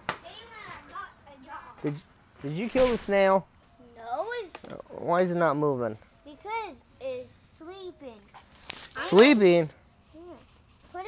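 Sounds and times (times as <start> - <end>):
children talking: 0.1 - 2.1, 3.6 - 11.0.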